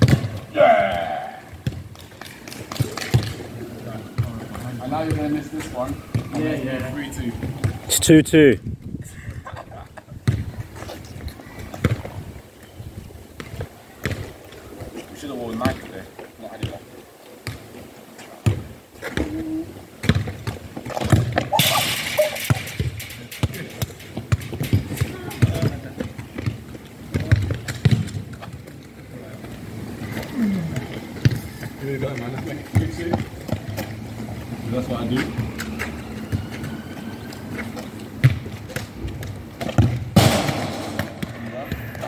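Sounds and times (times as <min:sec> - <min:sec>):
feet and ball knocking on tarmac: 0:00.0 - 0:03.5, 0:04.1 - 0:07.9, 0:10.2 - 0:12.2, 0:18.4 - 0:19.4, 0:20.0 - 0:21.6, 0:22.8 - 0:29.6, 0:30.7 - 0:42.0
ball rattling goal: 0:20.1 - 0:26.6
faint voices: 0:28.9 - 0:37.8.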